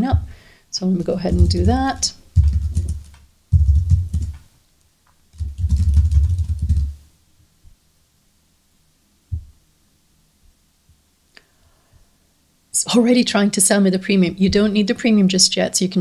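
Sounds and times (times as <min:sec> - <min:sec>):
dull low thumps: 0:01.2 - 0:04.4
typing on computer keyboard: 0:02.4 - 0:04.4, 0:05.3 - 0:07.0.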